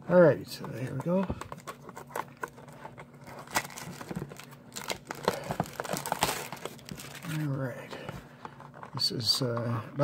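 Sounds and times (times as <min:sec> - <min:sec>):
cardboard box being torn open: 0:03.3 - 0:07.4.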